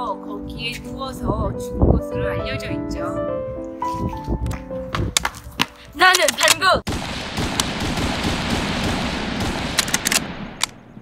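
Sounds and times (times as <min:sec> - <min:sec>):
rapid gunfire: 0:06.9 - 0:10.7.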